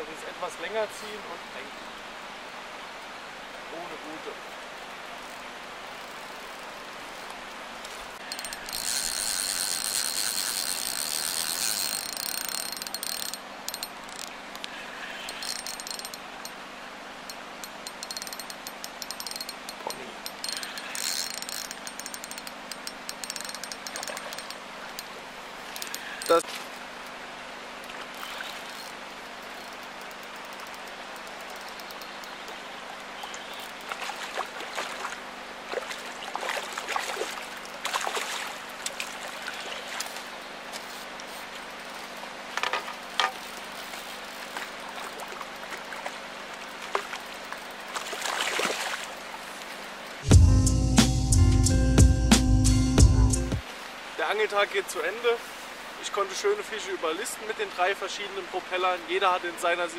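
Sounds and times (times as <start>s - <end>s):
fishing reel gears whirring: 5.9s - 6.6s, 8.2s - 16.6s, 17.2s - 26.4s, 28.1s - 32.4s
water splashing: 27.7s - 50.0s.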